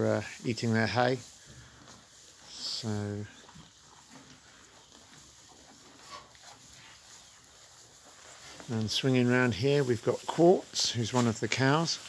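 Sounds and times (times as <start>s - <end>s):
calves munching hay: 0.0s - 12.0s.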